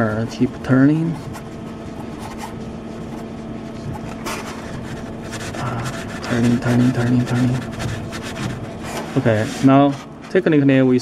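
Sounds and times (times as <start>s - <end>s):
threads rubbing and scraping: 0.0s - 10.6s
steady machine hum: 0.0s - 11.0s.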